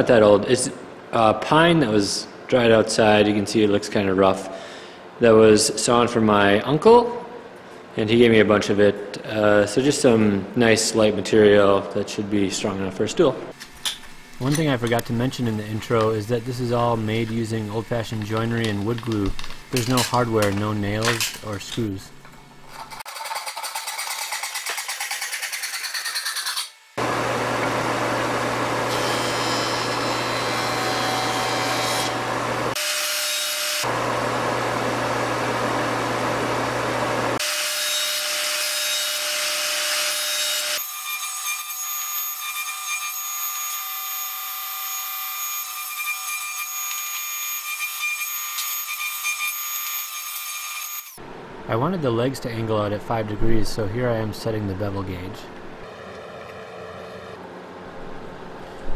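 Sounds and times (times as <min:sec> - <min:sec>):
hand saw cutting wood: 0:23.0 - 0:26.8
jointer cutting: 0:23.1 - 0:34.8
table saw whine: 0:26.0 - 0:51.2.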